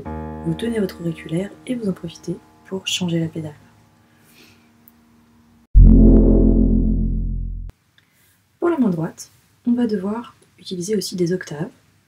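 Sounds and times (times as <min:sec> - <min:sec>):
low piano bass note: 0:05.8 - 0:07.7.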